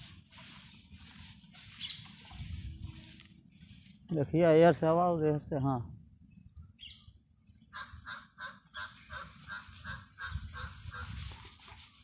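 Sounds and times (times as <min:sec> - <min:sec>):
bird calling in rapid notes: 0:07.7 - 0:11.2.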